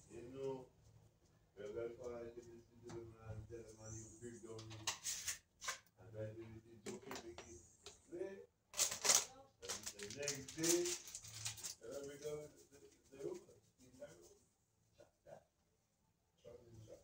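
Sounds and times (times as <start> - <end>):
man talking: 0.0 - 0.7, 1.6 - 4.8, 6.0 - 8.5, 9.6 - 11.0, 11.7 - 14.4.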